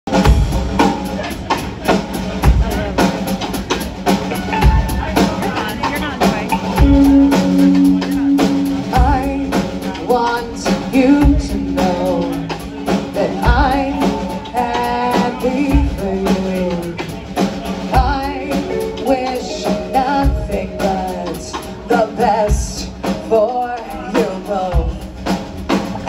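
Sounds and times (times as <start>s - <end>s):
drum kit beats: 0.0s - 26.0s
live rock band: 0.1s - 26.0s
woman singing lead vocal: 6.8s - 17.2s, 17.8s - 25.4s.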